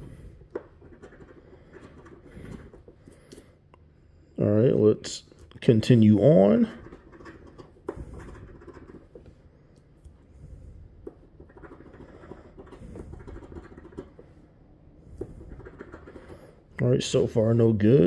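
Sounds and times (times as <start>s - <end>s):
coin scratching lottery ticket: 0.7s - 2.9s, 6.4s - 9.2s, 11.3s - 14.2s, 15.4s - 16.5s.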